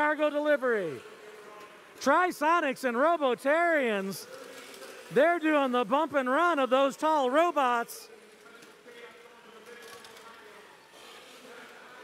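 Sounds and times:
faint crowd noise: 0:00.0 - 0:12.0.

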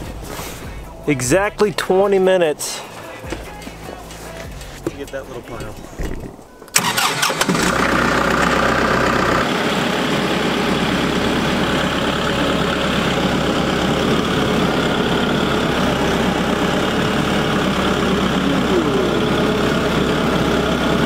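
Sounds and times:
tractor engine running steadily: 0:03.2 - 0:21.0
tractor diesel engine starting: 0:03.4 - 0:21.0.

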